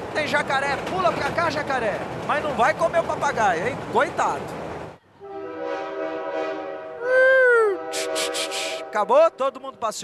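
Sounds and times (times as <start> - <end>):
voices imitating a train whistle: 5.2 - 9.0.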